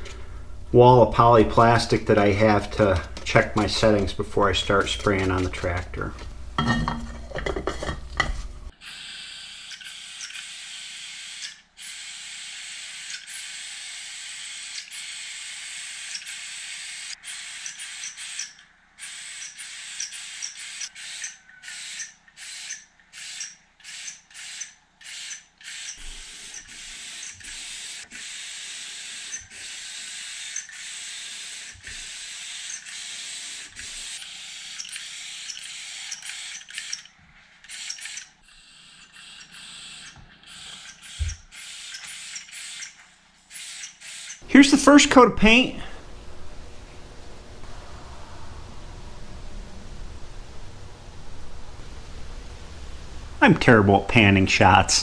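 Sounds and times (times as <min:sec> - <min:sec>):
paint spray gun hissing: 0:08.8 - 0:18.4, 0:21.8 - 0:37.0, 0:37.7 - 0:47.7.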